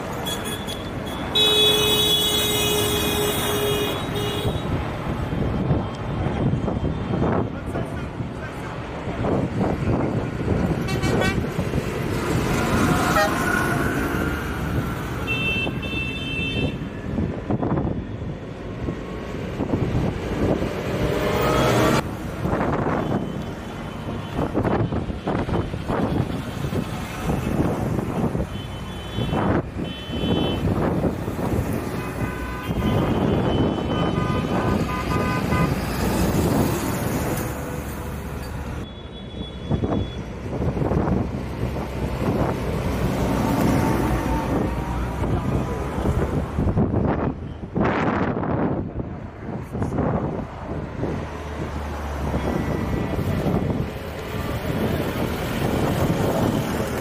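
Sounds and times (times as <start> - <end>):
tractor diesel engines running: 0.0 - 57.0
vehicle horns tooting: 0.2 - 4.8, 10.8 - 11.6, 12.9 - 13.7, 15.2 - 16.8, 28.2 - 30.8, 31.9 - 36.0, 38.8 - 40.3.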